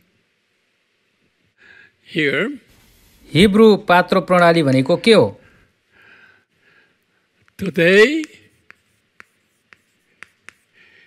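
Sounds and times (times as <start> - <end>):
chalk ticking on chalkboard: 7.5 - 11.0
chalk scratching: 7.6 - 11.0.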